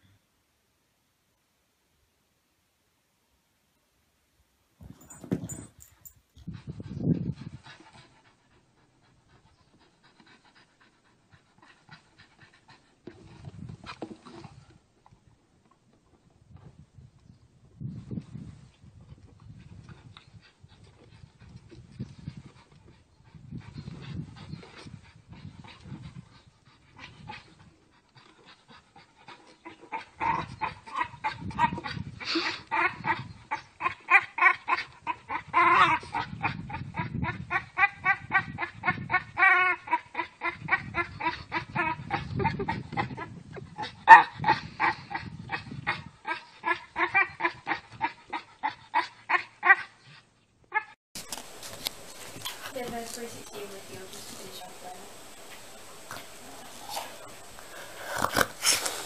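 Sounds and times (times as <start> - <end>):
dog high-pitched vocal pulses: 29.6 - 50.1.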